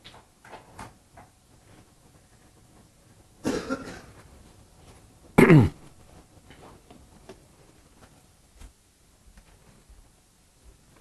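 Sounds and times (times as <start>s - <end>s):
man coughing: 3.4s - 4.2s, 5.4s - 5.8s.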